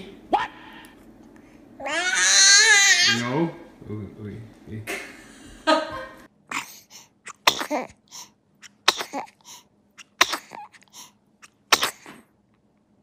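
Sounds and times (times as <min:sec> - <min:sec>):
newborn baby breathing bursts: 0:09.3 - 0:09.7, 0:10.8 - 0:11.2.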